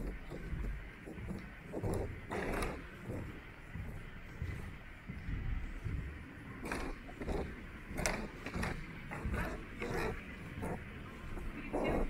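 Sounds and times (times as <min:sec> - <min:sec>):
footsteps on hard floor: 0:00.0 - 0:12.0
low rumble: 0:00.0 - 0:12.0.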